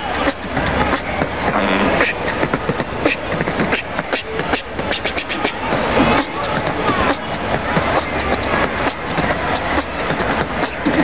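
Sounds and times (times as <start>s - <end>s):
human beatboxing: 0.0s - 11.0s.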